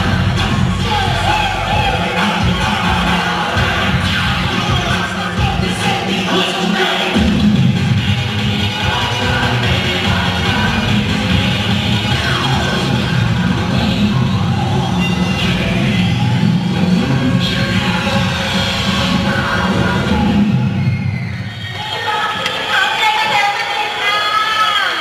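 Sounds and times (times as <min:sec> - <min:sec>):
loud cheerleading music: 0:00.0 - 0:25.0.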